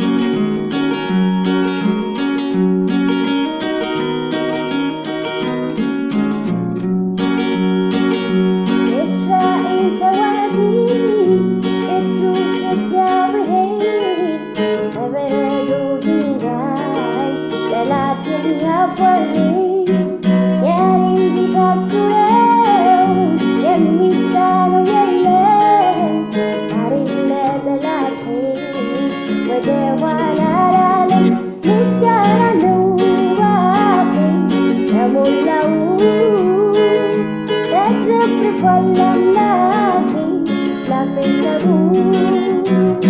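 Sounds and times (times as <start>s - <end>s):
acoustic guitar chords: 0.0s - 43.0s
woman singing: 7.5s - 43.0s.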